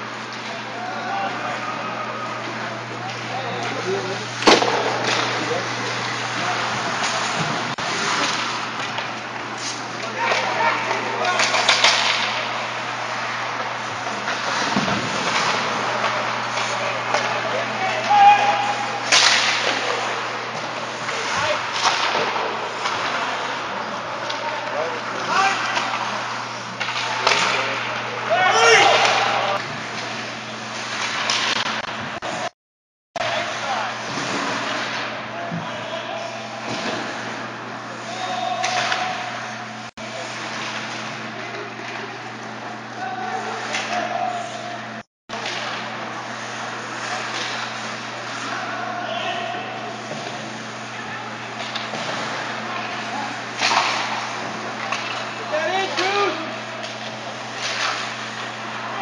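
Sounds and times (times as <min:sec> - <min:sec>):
players shouting: 0:00.5 - 0:07.4, 0:09.9 - 0:29.6, 0:38.0 - 0:39.8, 0:42.7 - 0:44.9, 0:48.1 - 0:59.0
sticks and puck clacking: 0:02.4 - 0:32.0, 0:38.1 - 0:39.5, 0:51.6 - 0:59.0
skates scraping ice: 0:03.1 - 0:31.6, 0:36.2 - 0:37.4, 0:46.1 - 0:50.8.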